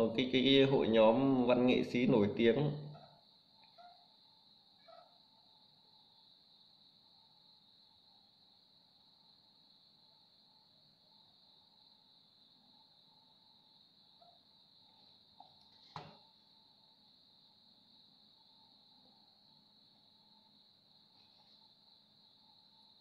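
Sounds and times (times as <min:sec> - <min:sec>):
faint high-pitched whine: 0:00.0 - 0:23.0
faint small ticks: 0:03.0 - 0:04.0.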